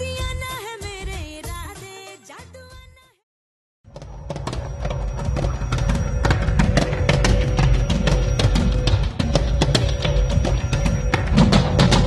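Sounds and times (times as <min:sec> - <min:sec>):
sharp knocks: 0:03.9 - 0:12.0.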